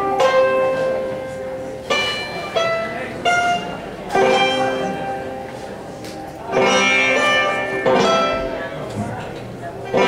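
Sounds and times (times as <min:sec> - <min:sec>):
plucked string chord ringing: 0:00.0 - 0:05.5, 0:06.4 - 0:10.0.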